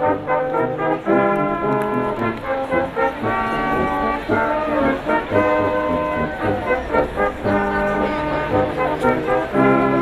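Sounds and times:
brass band playing chords: 0.0s - 10.0s.

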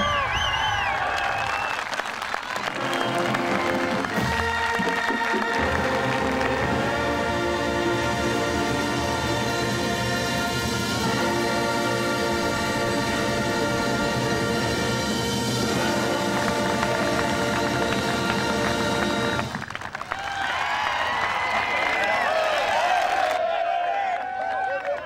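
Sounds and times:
men shouting and cheering: 0.0s - 1.9s, 20.0s - 25.0s
brass band chords: 2.6s - 19.6s.

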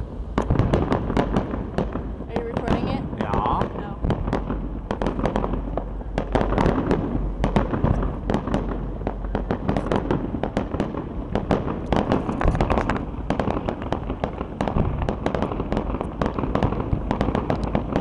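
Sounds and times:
fireworks bangs and crackling: 0.0s - 18.0s.

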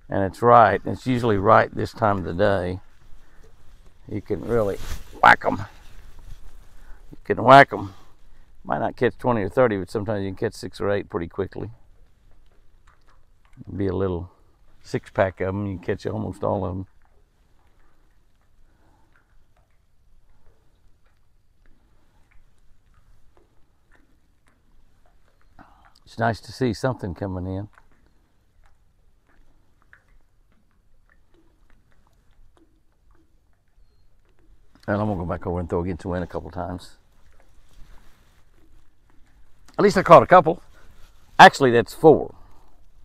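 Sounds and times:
soft ticks and clicks: 0.0s - 43.0s.

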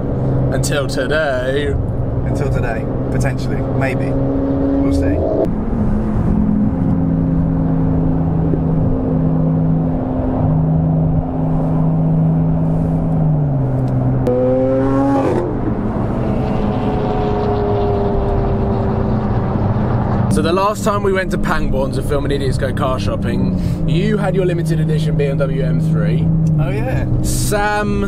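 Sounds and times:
car engine drone and rev: 0.0s - 28.0s
road noise inside a car: 0.0s - 28.0s.

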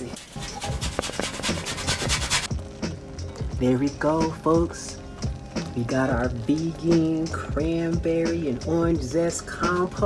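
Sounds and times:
zesting on a metal grater: 0.0s - 2.5s.

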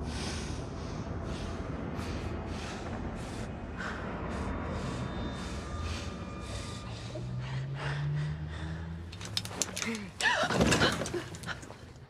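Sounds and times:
low steady drone: 0.0s - 10.3s.

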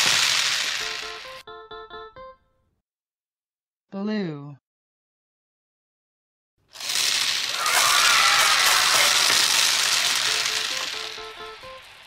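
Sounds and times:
musical notes: 0.8s - 2.7s, 10.0s - 12.0s
plastic balls scattering on table: 6.8s - 10.9s.

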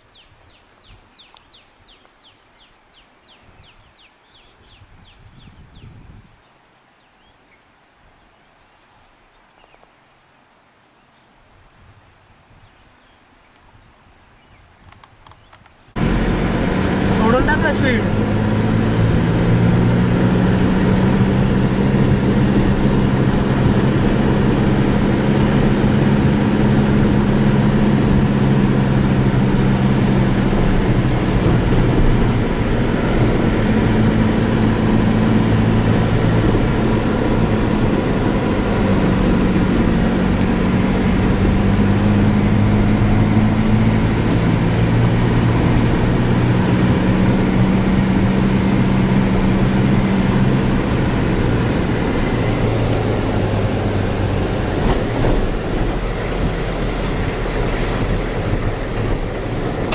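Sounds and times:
road noise: 14.9s - 59.9s
vehicle engine hum: 15.4s - 59.9s.

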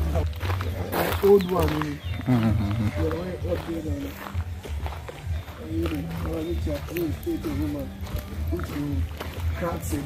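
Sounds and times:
low bass line: 0.0s - 10.0s.

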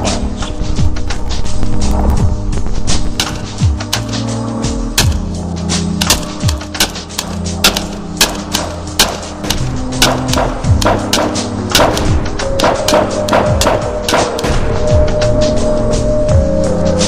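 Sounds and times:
sharp knocks and thuds: 2.6s - 4.3s, 4.9s - 14.8s.

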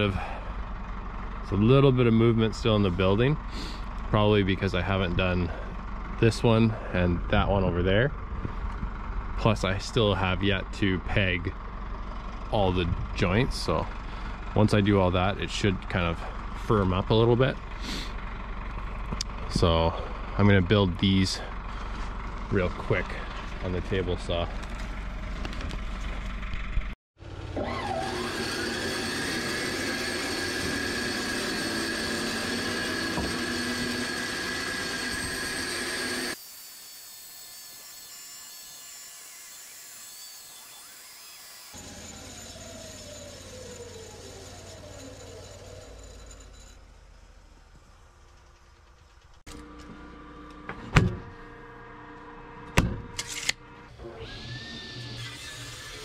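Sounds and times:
table saw whining: 27.2s - 47.8s, 49.5s - 56.0s.

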